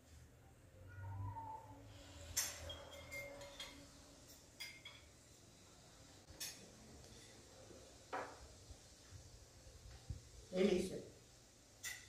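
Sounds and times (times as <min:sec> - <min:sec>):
cutlery clinking on a plate: 0:02.3 - 0:05.2, 0:06.3 - 0:07.4, 0:11.8 - 0:12.0.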